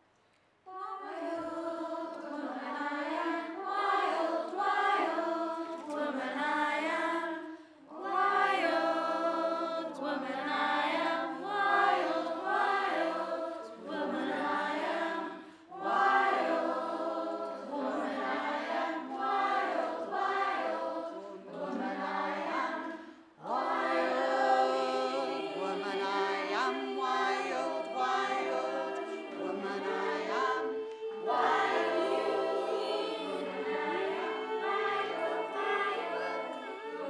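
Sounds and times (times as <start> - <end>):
choir singing unaccompanied: 0.7 - 37.0.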